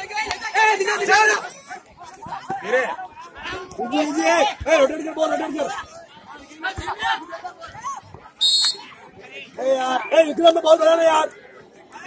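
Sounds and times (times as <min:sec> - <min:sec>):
crowd chatter: 0:00.0 - 0:12.0
referee's whistle blast: 0:08.4 - 0:08.9.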